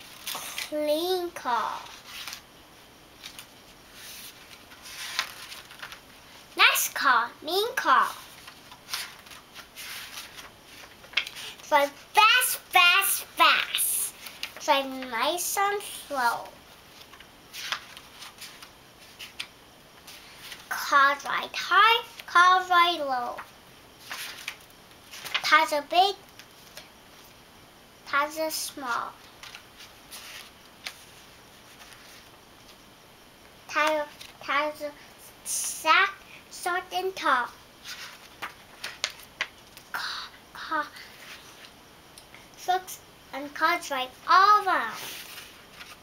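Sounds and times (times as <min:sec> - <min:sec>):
book pages turning: 0:01.8 - 0:02.5, 0:03.2 - 0:06.4, 0:08.1 - 0:11.7, 0:14.1 - 0:15.0, 0:16.9 - 0:20.8, 0:23.3 - 0:25.5, 0:29.1 - 0:32.8, 0:37.8 - 0:39.9, 0:44.9 - 0:46.0.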